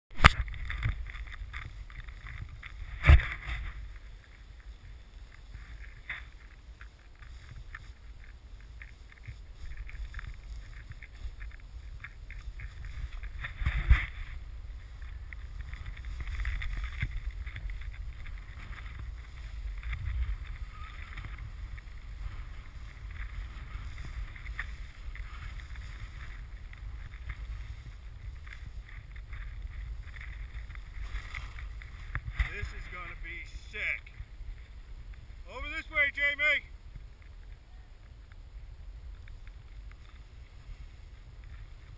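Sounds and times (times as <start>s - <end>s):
wind noise on microphone: 0.1s - 41.9s.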